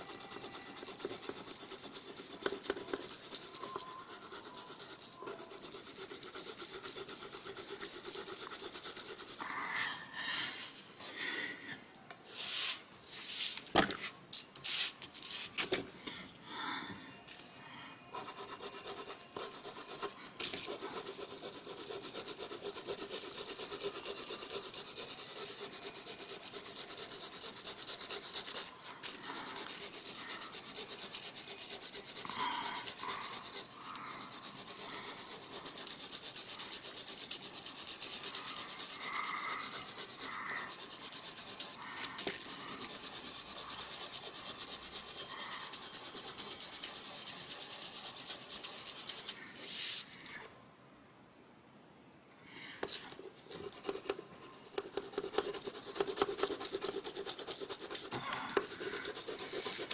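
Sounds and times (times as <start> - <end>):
pencil scratching on paper: 0.0 - 9.4, 18.1 - 50.0, 52.9 - 59.9.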